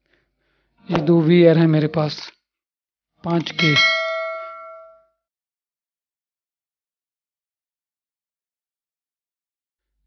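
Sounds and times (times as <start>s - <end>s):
bright bell chime: 3.4s - 5.2s.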